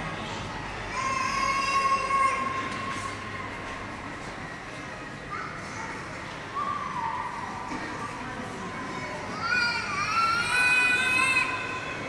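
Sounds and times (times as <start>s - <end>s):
low background murmur: 0.0s - 12.0s.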